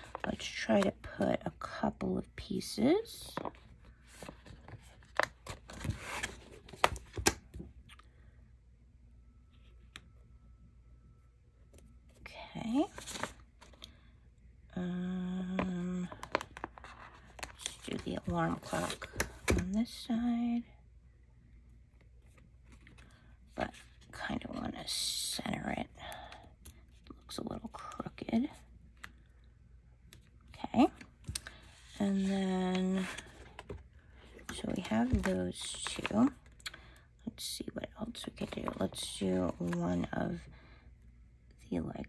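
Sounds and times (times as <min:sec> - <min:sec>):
person speaking: 0:17.6 - 0:20.6, 0:31.9 - 0:33.7, 0:34.4 - 0:36.4
paper sticker sheets rustling: 0:31.8 - 0:36.3.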